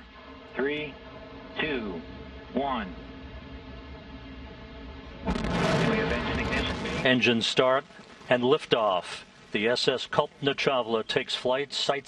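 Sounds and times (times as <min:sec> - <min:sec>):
rocket engines roaring at liftoff: 0:00.0 - 0:12.0.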